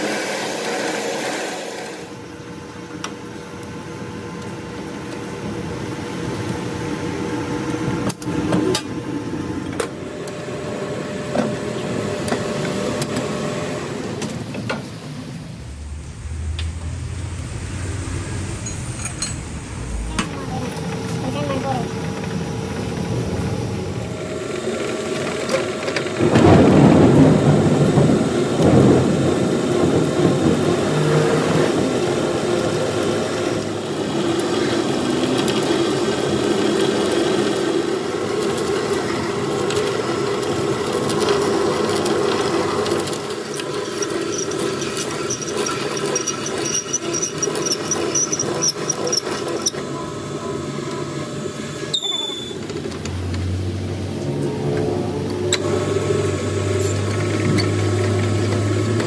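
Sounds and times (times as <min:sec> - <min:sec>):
drill grating in metal lathe: 0:00.0 - 0:02.1, 0:41.3 - 0:49.8
lathe machine tones: 0:16.6 - 0:53.4.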